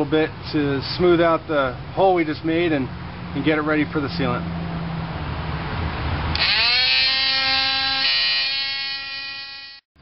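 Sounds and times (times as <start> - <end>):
electric sander whining: 6.3 - 9.8.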